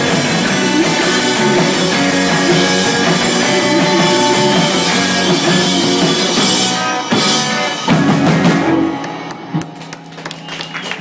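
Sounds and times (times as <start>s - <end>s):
guitar and bass notes ringing: 0.0s - 9.9s
rock band playing: 0.0s - 11.0s
sharp claps: 9.0s - 11.0s.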